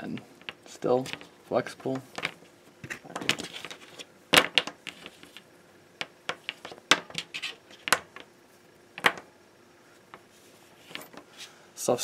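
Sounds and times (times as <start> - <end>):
wire tapping and scraping on plastic mat: 0.1 - 8.3.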